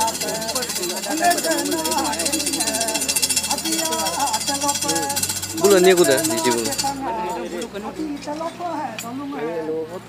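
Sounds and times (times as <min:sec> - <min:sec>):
metallic jingling: 0:00.0 - 0:09.2
voices singing a chant: 0:00.0 - 0:10.0.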